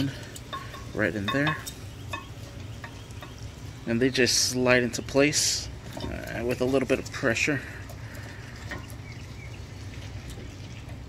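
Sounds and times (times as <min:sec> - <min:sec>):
small metallic ticks: 0:00.0 - 0:04.0, 0:05.8 - 0:11.0
steady low hum: 0:00.0 - 0:11.0.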